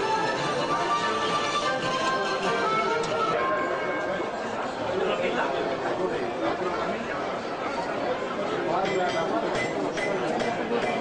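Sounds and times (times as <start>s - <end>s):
music: 0.0s - 4.2s
crowd chatter: 0.0s - 11.0s.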